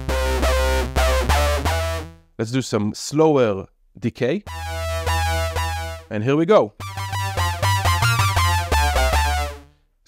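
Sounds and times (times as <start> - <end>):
synthesizer bass notes: 0.0 - 2.2, 4.5 - 6.1, 6.8 - 9.7.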